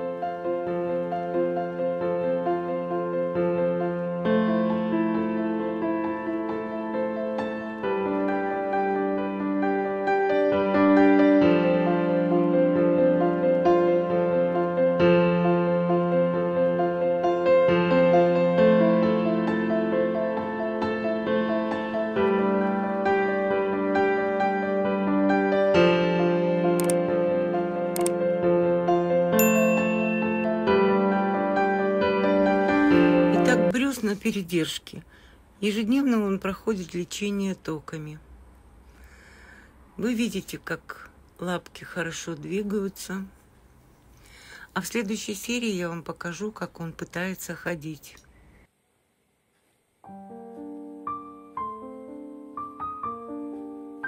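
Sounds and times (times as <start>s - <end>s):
piano keyboard music: 0.0s - 34.2s, 50.0s - 54.0s
short sharp clicks: 26.8s - 27.0s.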